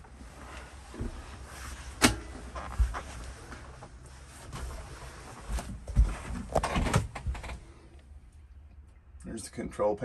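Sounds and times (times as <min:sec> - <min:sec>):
rustling and movement: 0:00.0 - 0:08.0.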